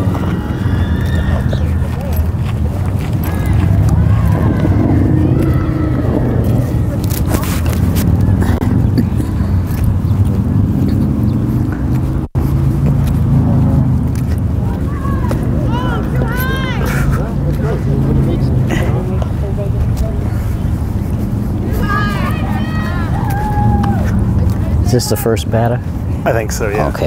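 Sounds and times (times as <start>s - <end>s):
people calling out: 0.0s - 9.7s, 14.5s - 25.0s
steady low rumble: 0.0s - 27.0s.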